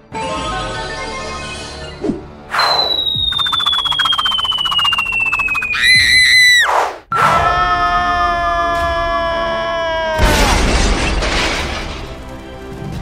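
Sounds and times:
cartoon whoosh: 0:02.5 - 0:07.0
brief wavering tone: 0:02.6 - 0:05.8
long falling whistle: 0:02.6 - 0:06.7
fast fuse crackle: 0:03.3 - 0:05.9.

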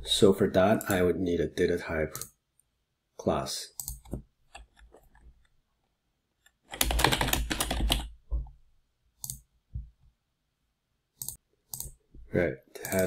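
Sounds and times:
fast typing on keyboard: 0:06.6 - 0:08.2.

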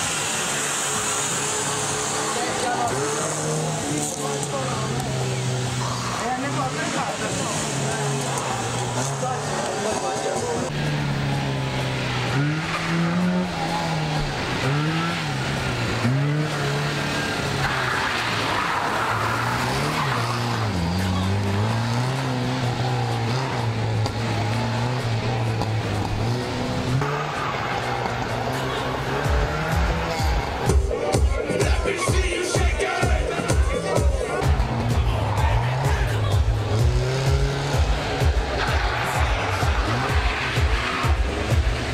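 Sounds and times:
car engine revving: 0:00.0 - 0:41.9.

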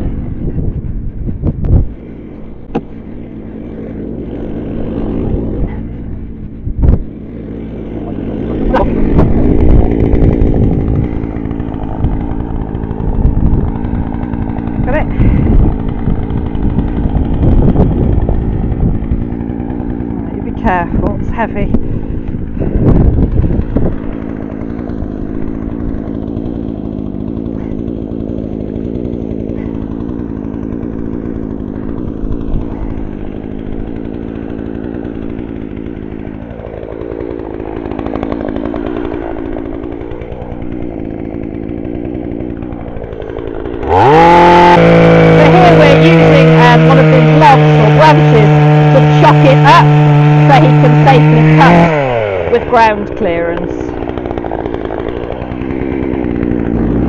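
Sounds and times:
chainsaw cutting through branch: 0:00.0 - 0:57.0
chainsaw idling: 0:00.0 - 0:57.0
crackling of chain biting wood: 0:02.3 - 0:21.0, 0:21.8 - 0:57.0.

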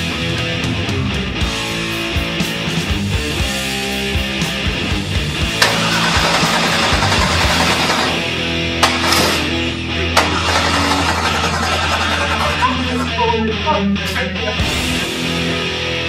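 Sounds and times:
heavy rock music: 0:00.0 - 0:16.0
stock car engine running: 0:04.9 - 0:15.4.

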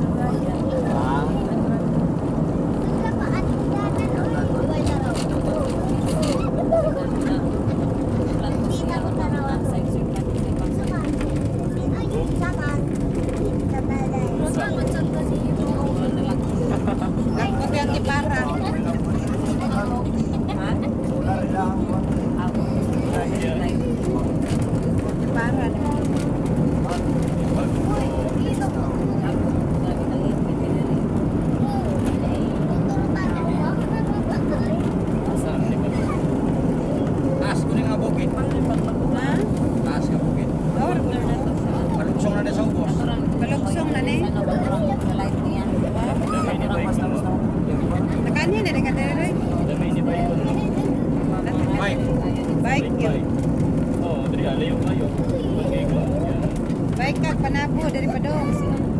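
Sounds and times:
voices talking: 0:00.0 - 0:53.4, 0:54.0 - 0:58.9
vehicle engine and road noise: 0:00.0 - 0:58.9.

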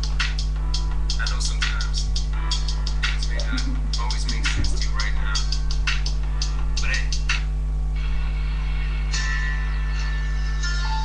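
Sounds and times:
electrical mains hum: 0:00.0 - 0:11.0
music playing in room: 0:00.0 - 0:11.0.

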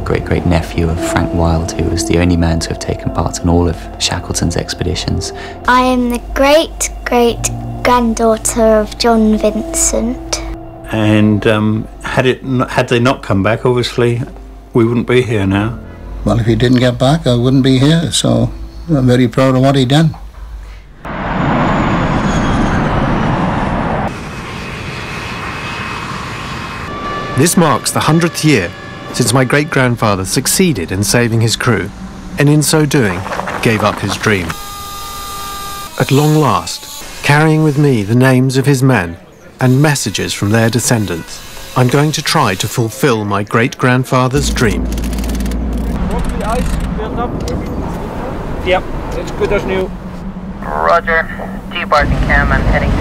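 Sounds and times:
voices: 0:00.0 - 0:20.3, 0:27.3 - 0:34.6, 0:36.0 - 0:45.0, 0:46.0 - 0:53.0
faint high turbine whine: 0:15.8 - 0:37.9, 0:44.3 - 0:53.0
jet engines running: 0:21.0 - 0:35.9, 0:44.4 - 0:53.0
engine idling: 0:44.4 - 0:47.6.

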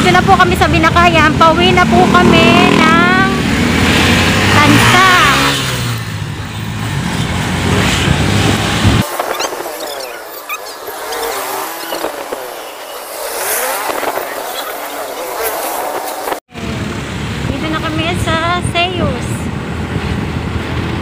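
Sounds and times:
road and wind noise: 0:00.0 - 0:21.0
traffic noise: 0:00.0 - 0:21.0.

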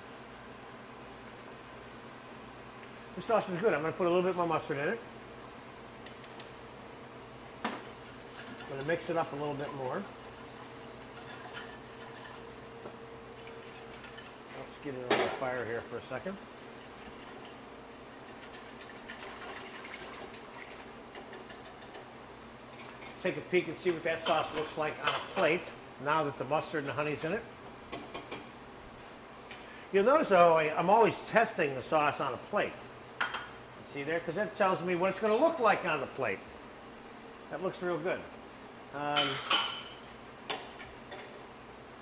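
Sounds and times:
faint steady hum: 0:00.0 - 0:42.0
whisk tapping in metal pot: 0:08.1 - 0:12.5, 0:18.2 - 0:22.1.

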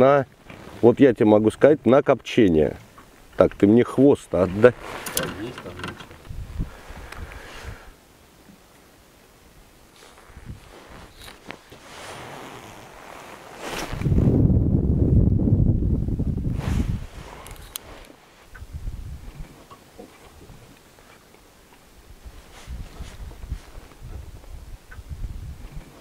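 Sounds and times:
handling knocks and rustles: 0:04.4 - 0:06.4, 0:10.0 - 0:14.2, 0:22.5 - 0:24.4
wind buffeting microphone: 0:04.5 - 0:07.9, 0:10.3 - 0:11.1, 0:13.8 - 0:17.7, 0:18.5 - 0:19.5, 0:22.1 - 0:26.0.

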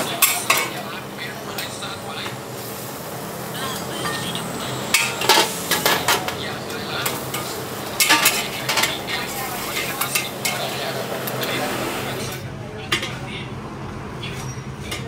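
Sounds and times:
noodles sizzling in a wok: 0:00.0 - 0:12.2
metal clanks: 0:07.0 - 0:09.0.

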